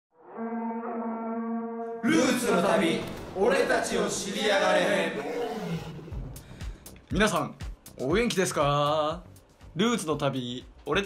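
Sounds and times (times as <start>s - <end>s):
long horn-like note: 0.2s - 2.1s.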